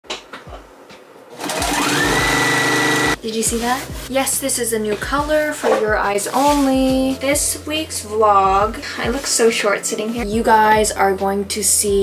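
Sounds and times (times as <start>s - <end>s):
sewing machine running: 1.4s - 3.2s.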